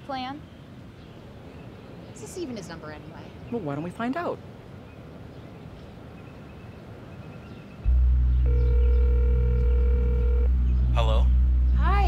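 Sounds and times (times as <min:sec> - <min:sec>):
deep steady low drone: 0:07.8 - 0:12.0
telephone ringback tone: 0:08.4 - 0:10.5.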